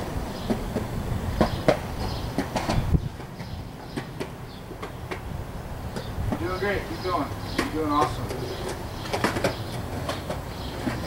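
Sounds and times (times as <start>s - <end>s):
skateboard clacks: 0.0s - 11.0s
skateboard rolling over pavement: 0.0s - 11.0s.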